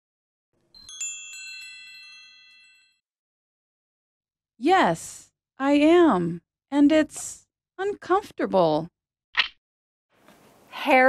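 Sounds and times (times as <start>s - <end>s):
wind chime ringing: 0.7s - 3.0s.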